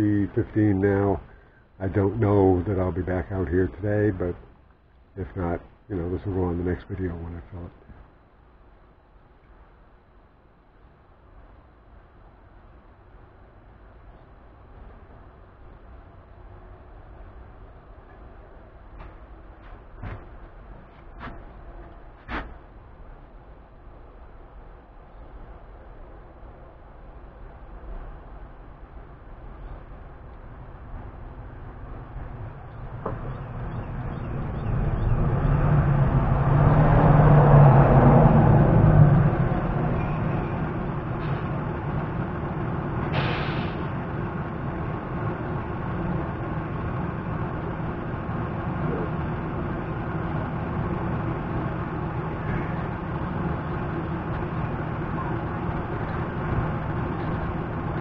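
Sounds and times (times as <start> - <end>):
large vehicle engine rumbling: 0.0 - 58.0
short hiss: 43.1 - 43.9.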